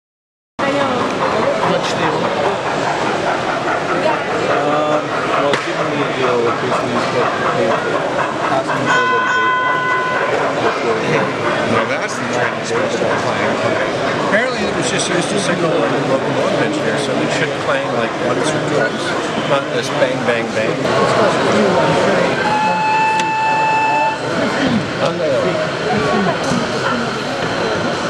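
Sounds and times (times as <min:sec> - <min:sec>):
crowd chatter: 0:00.6 - 0:28.0
model railway running: 0:00.6 - 0:28.0
model steam locomotive whistle: 0:22.3 - 0:24.4.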